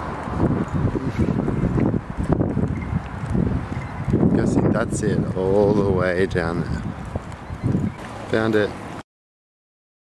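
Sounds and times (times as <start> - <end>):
wind on microphone: 0.0 - 9.0.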